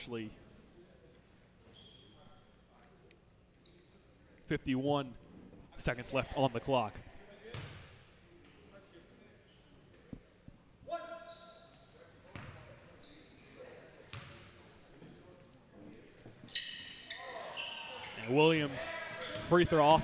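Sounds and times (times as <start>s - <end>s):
voices in large hall: 0.0s - 20.0s.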